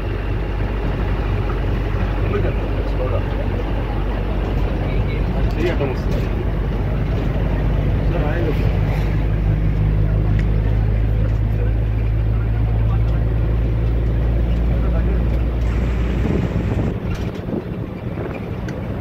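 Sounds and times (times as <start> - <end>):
bus engine and road noise: 0.0 - 19.0
passengers' voices murmuring: 0.0 - 19.0.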